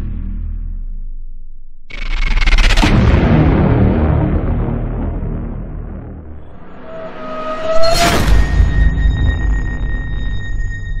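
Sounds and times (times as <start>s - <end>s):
deep rumble: 0.0s - 11.0s
high ringing tone: 6.5s - 11.0s.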